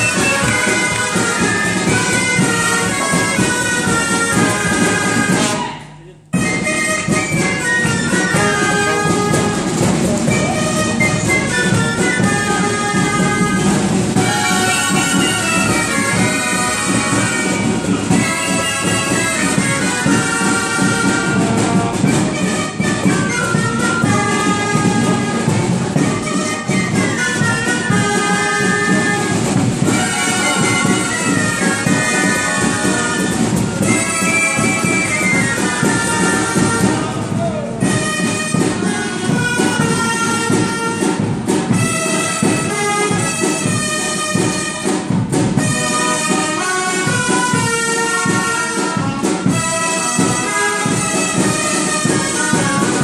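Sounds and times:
drum beat: 0.0 - 53.0
percussion: 0.0 - 53.0
reedy wind instruments melody: 0.0 - 53.0
shawms playing a tune: 0.0 - 53.0.

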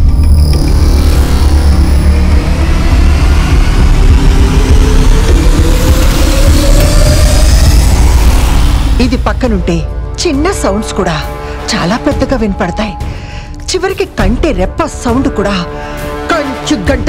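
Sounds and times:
rising tone: 0.0 - 10.9
low rumbling drone: 0.0 - 16.7.

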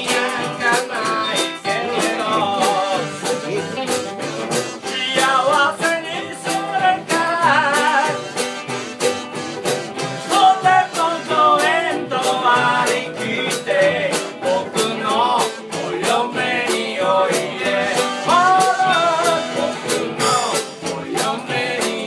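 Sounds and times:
man singing: 0.0 - 8.5, 10.2 - 22.0
archtop guitar strummed: 0.0 - 22.0
banjo ukulele strummed: 0.0 - 22.0
jug blown for bass: 0.0 - 22.0.

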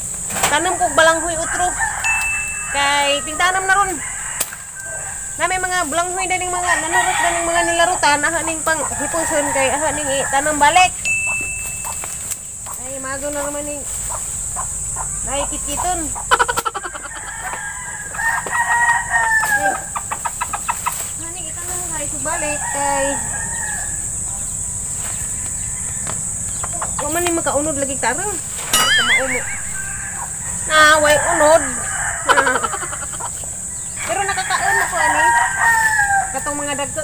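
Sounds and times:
rooster crowing: 0.7 - 12.0, 16.4 - 20.1, 22.0 - 24.4, 25.2 - 26.5, 28.7 - 37.0.

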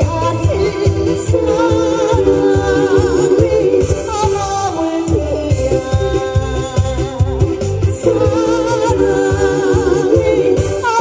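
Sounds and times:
backing track with steady beat: 0.0 - 11.0
woman singing into microphone: 0.0 - 11.0.

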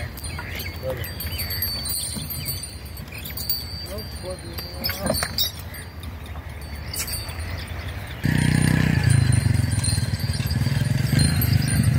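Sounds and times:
birds chirping: 0.0 - 11.9
small metal bells jingling: 0.0 - 11.9.

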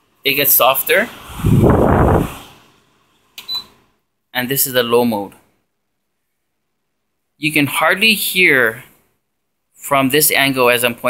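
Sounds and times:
fan blowing air: 0.0 - 3.0.

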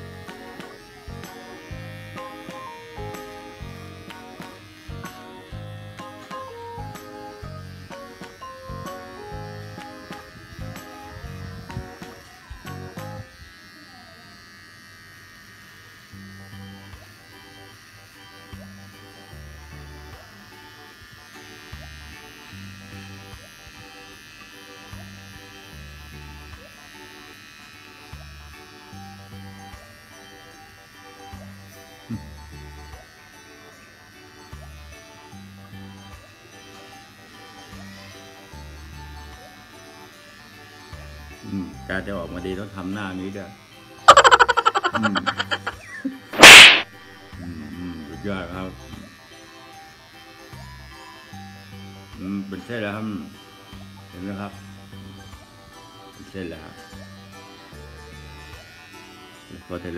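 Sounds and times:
electric beard trimmer buzzing: 0.0 - 59.9.

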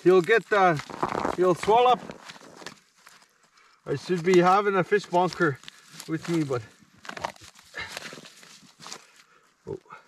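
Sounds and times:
crunching of snow: 0.0 - 9.8.

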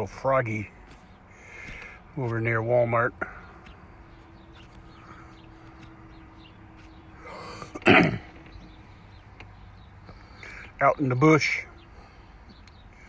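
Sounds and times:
intake of breath: 1.3 - 2.0
man coughing: 7.7 - 8.4.

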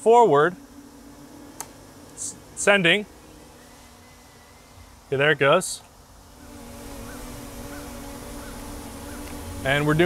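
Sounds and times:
quadcopter propellers humming: 0.0 - 10.0
faint chirp: 3.2 - 5.2.

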